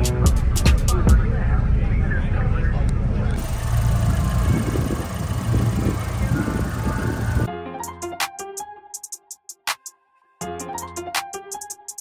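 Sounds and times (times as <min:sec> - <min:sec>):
wind buffeting microphone: 0:03.4 - 0:07.5.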